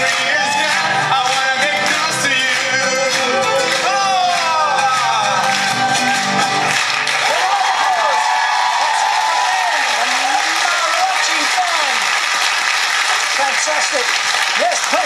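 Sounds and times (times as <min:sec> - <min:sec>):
mariachi band playing: 0:00.0 - 0:08.1
audience applauding and cheering: 0:00.0 - 0:15.0.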